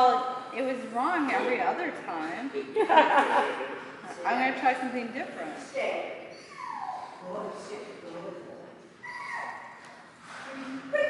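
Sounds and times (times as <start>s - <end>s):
dog whining: 6.3s - 7.2s, 9.0s - 9.8s.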